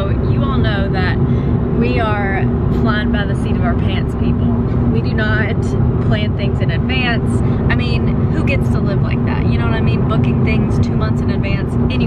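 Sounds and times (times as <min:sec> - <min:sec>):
car road and engine rumble: 0:00.0 - 0:12.0
steady hum: 0:00.0 - 0:12.0.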